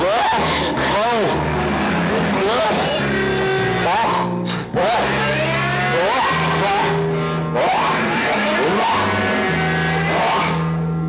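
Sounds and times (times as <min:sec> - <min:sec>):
distorted low string drone: 0:00.0 - 0:11.0.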